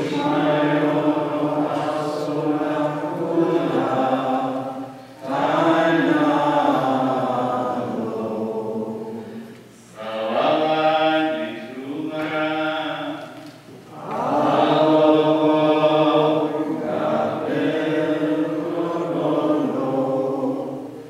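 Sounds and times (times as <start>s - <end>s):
liturgical chant singing: 0.0s - 21.0s.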